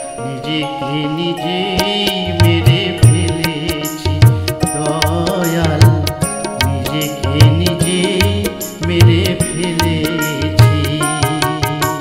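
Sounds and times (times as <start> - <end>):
held instrumental chords: 0.0 - 12.0
man singing: 0.0 - 12.0
drum beat: 2.4 - 12.0.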